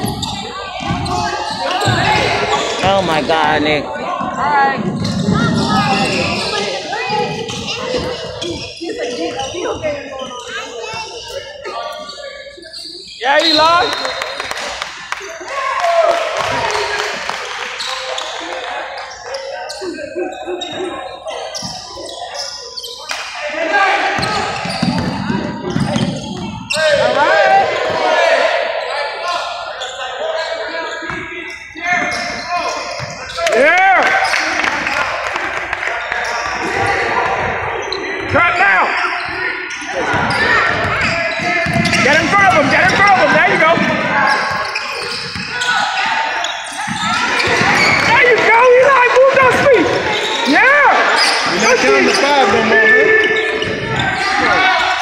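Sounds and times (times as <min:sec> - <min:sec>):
sneaker squeaks: 0:00.0 - 0:03.3, 0:04.1 - 0:14.8, 0:17.5 - 0:23.3, 0:24.1 - 0:27.2, 0:28.8 - 0:34.7, 0:36.0 - 0:55.0
basketball bouncing: 0:24.2 - 0:26.6, 0:40.1 - 0:45.5.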